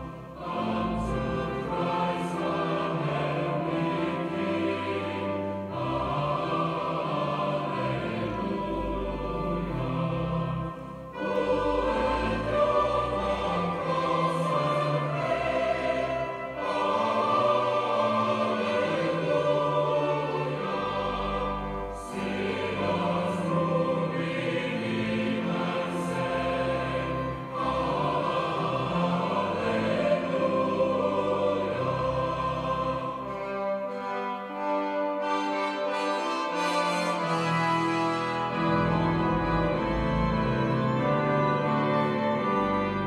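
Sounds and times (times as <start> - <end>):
choir singing a hymn: 0.0 - 43.0.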